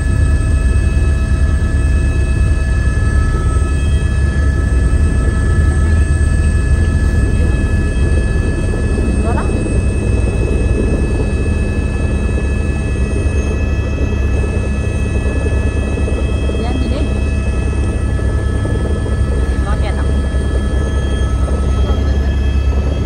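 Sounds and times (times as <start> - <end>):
engine drone with high whining: 0.0 - 23.0.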